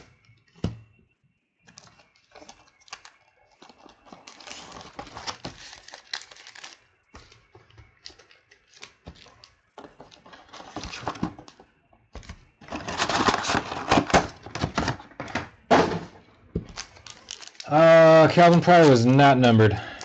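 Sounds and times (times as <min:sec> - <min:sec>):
foil card packs rustling: 0:01.7 - 0:11.6, 0:12.2 - 0:20.0.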